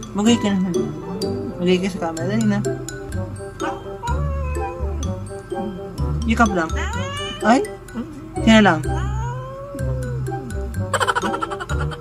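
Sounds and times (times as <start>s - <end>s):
music with steady bass beat: 2.2s - 9.2s, 9.8s - 12.0s
cat meowing: 4.0s - 5.1s, 6.8s - 7.6s, 8.9s - 10.4s.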